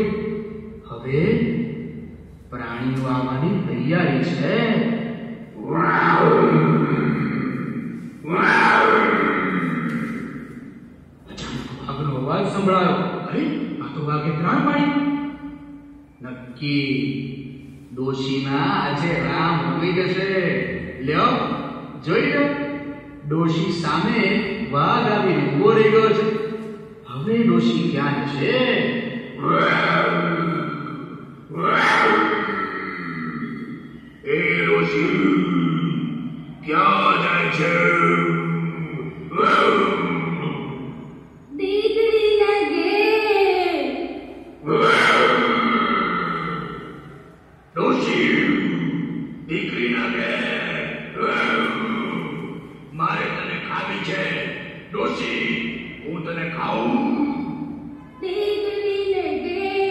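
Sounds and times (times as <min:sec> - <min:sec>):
voice chanting a held note: 0:00.0 - 0:11.9, 0:12.8 - 0:59.9
cartoon tiger growl: 0:05.6 - 0:10.2, 0:29.4 - 0:36.2, 0:44.6 - 0:47.0.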